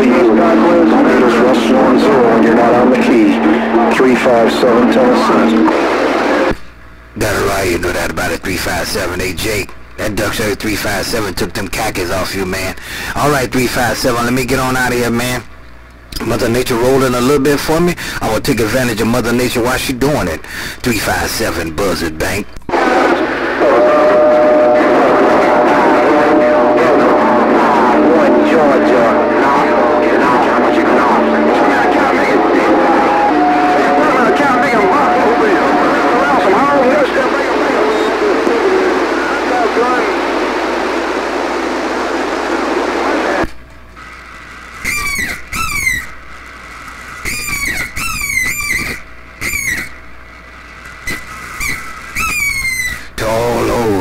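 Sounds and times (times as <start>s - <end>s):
garbled radio voices: 0.0s - 6.6s, 22.2s - 43.5s, 53.2s - 54.0s
steady radio tones: 0.0s - 15.4s, 16.2s - 43.5s, 52.9s - 54.0s
whistling radio squeals: 23.6s - 40.1s, 44.8s - 46.2s, 47.2s - 50.0s, 51.0s - 53.1s.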